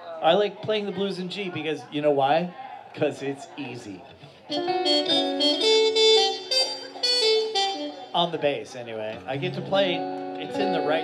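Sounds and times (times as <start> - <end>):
harmonica playing chords: 4.5 - 8.4, 9.4 - 11.0.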